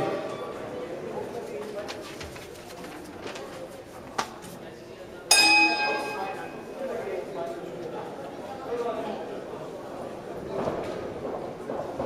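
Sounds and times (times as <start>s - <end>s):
murmur of spectators' voices: 0.0s - 12.0s.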